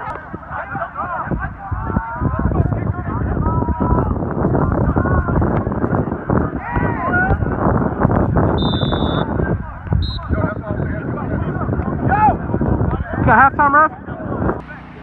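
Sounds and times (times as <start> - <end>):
players shouting: 0.0 - 4.2, 6.4 - 7.6
wind buffeting microphone: 0.0 - 15.0
referee's whistle: 8.5 - 9.4, 10.0 - 10.6.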